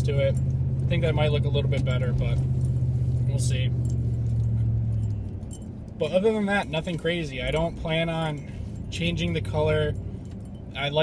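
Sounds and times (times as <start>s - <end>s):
engine drone inside cab: 0.0s - 11.0s
road noise: 0.0s - 11.0s.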